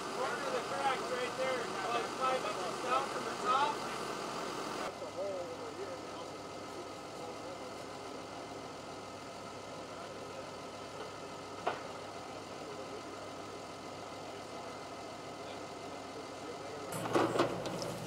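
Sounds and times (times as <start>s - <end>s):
faint voices: 0.0s - 4.1s, 4.8s - 18.0s
heavy machine engine idling: 0.0s - 18.0s.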